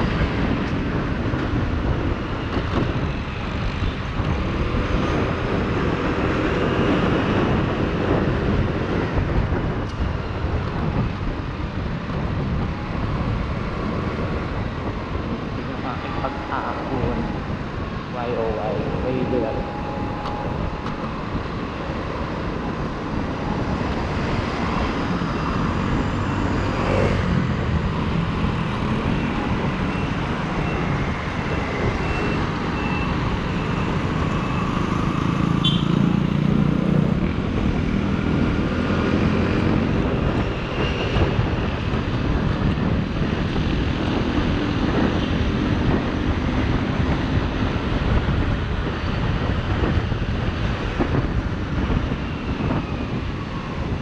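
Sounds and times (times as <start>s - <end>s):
road and traffic noise: 0.0s - 54.0s.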